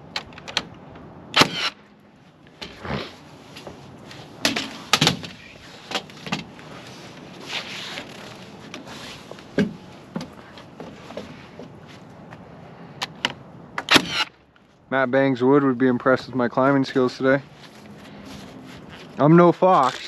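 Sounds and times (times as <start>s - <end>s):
nail gun firing: 1.3s - 1.8s, 13.8s - 14.3s
lumber knocks and thumps: 4.4s - 6.6s, 8.7s - 11.8s.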